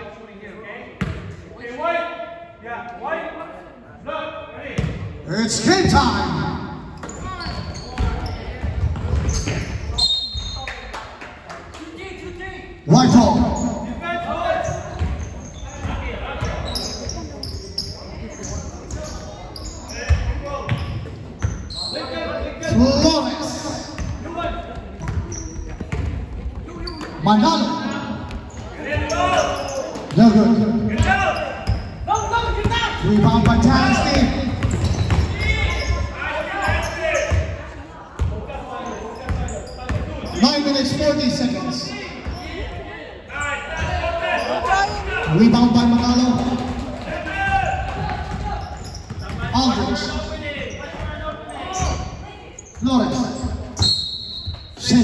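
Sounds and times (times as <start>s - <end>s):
voices calling out with echo: 0.0s - 55.0s
basketball bouncing on wooden floor: 32.5s - 35.7s.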